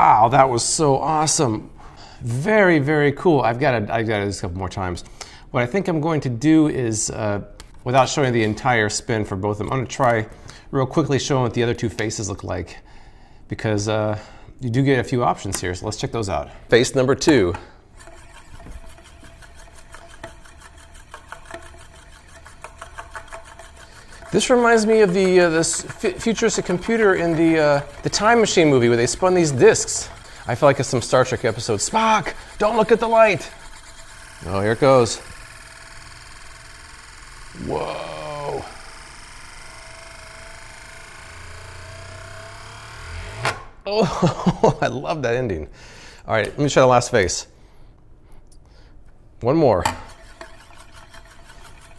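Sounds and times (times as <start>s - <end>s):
spinning disk rattling whir: 17.9s - 43.7s, 49.9s - 51.9s.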